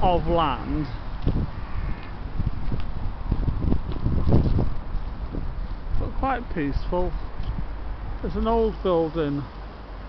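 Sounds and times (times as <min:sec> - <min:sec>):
wind on microphone: 0:00.0 - 0:08.3
distant road traffic: 0:00.0 - 0:10.0.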